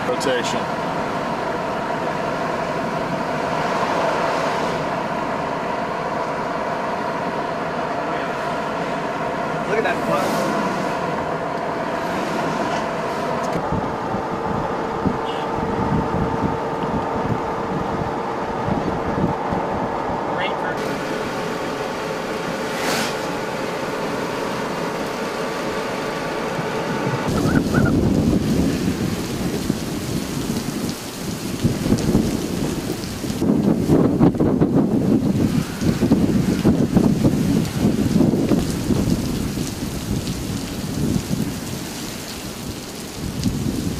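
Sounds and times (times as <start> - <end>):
heavy rain: 0.0 - 43.9
vehicle hum and road noise: 0.0 - 43.9
wind: 0.0 - 43.9
thunder rumbling: 8.4 - 41.8.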